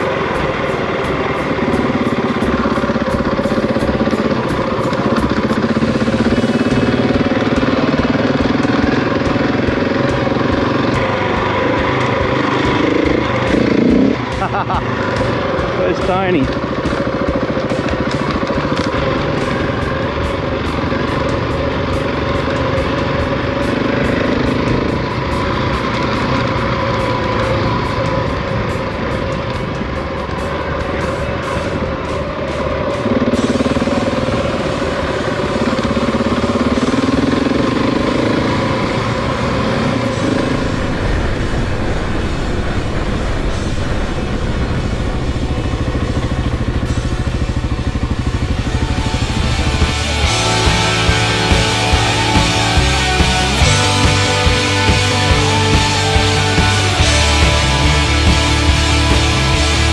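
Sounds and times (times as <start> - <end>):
motorcycle engine revving: 0.0 - 59.9
music: 0.0 - 59.9.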